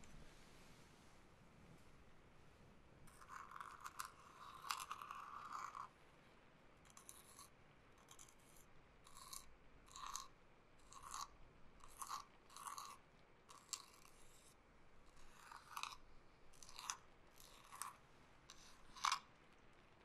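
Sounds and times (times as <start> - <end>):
stick scratching in a small bowl: 3.1 - 5.9, 6.9 - 19.3.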